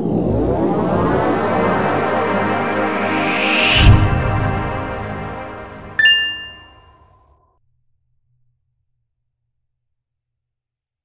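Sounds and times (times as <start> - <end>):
logo jingle music: 0.2 - 6.8
bright chime ringing: 6.0 - 6.8.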